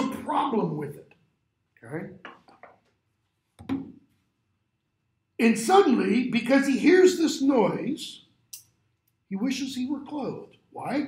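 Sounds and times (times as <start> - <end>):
man speaking: 0.0 - 1.1, 5.4 - 8.3, 9.3 - 11.0.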